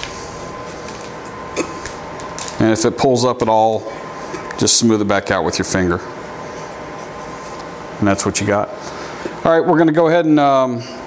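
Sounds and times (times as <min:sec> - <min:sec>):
workshop room hiss: 0:00.0 - 0:11.0.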